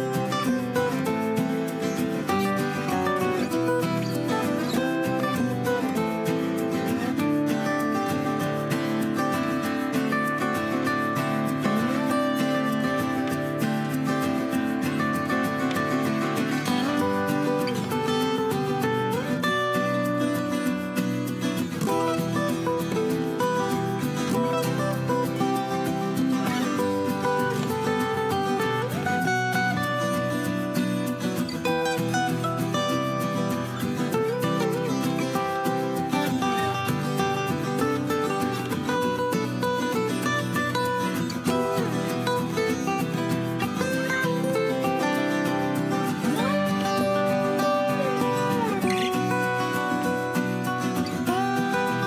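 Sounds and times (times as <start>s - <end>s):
acoustic guitar music: 0.0s - 52.0s.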